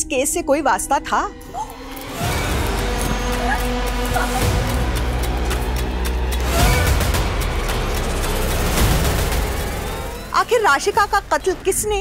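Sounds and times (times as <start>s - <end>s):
low rumbling drone score: 1.3s - 12.0s.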